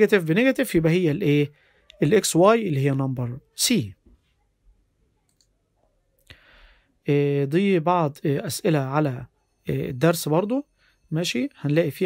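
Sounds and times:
computer mouse clicks: 0:05.2 - 0:05.6.

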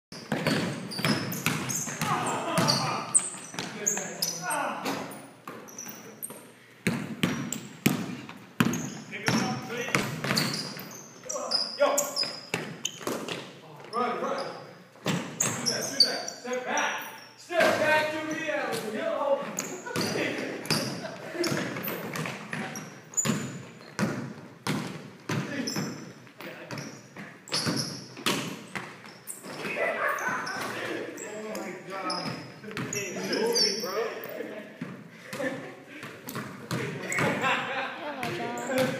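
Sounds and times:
sneakers squeaking on hardwood: 0:00.1 - 0:38.9
basketball bouncing on wooden floor: 0:00.2 - 0:03.8, 0:04.9 - 0:11.0, 0:19.5 - 0:26.1, 0:26.7 - 0:29.7
players' voices: 0:00.3 - 0:06.6, 0:08.8 - 0:12.4, 0:13.6 - 0:23.0, 0:29.4 - 0:38.9
players calling out: 0:00.4 - 0:06.3
short high squeaks: 0:10.4 - 0:13.1, 0:15.4 - 0:17.4, 0:32.0 - 0:34.2.

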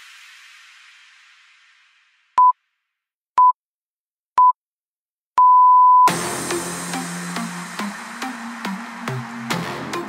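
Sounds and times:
interval timer beeps: 0:05.4 - 0:06.1.

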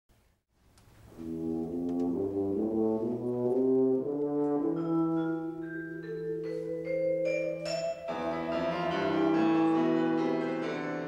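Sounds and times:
tuba playing: 0:01.1 - 0:05.9, 0:08.1 - 0:11.0
vibraphone tones: 0:04.6 - 0:11.0.

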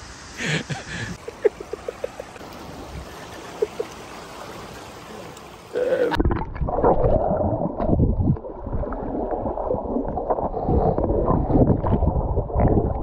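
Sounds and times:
open-air hiss by the sea: 0:00.0 - 0:06.2
muffled underwater churning water: 0:01.4 - 0:13.0.

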